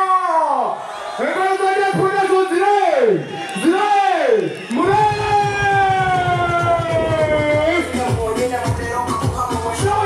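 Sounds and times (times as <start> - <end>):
drum beat: 4.8 - 10.0.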